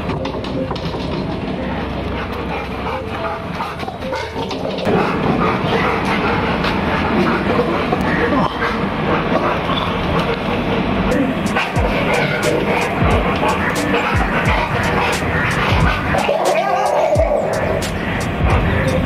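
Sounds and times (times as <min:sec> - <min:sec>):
dogs barking: 0:00.0 - 0:19.0.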